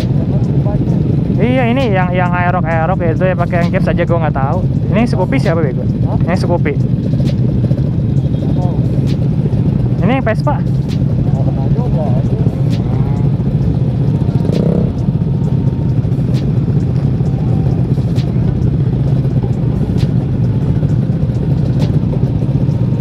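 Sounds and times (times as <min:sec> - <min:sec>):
motorcycle engines idling: 0:00.0 - 0:23.0.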